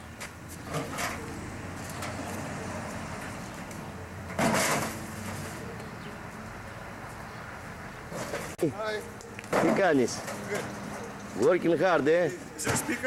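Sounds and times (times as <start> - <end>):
equipment scraping clatter: 0.6 - 2.2, 4.3 - 5.6, 8.1 - 8.6.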